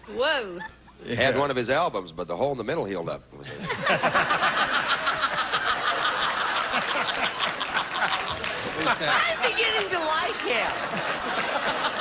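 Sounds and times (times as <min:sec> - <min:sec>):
audience laughing: 0:03.6 - 0:12.0
audience applauding: 0:04.8 - 0:12.0.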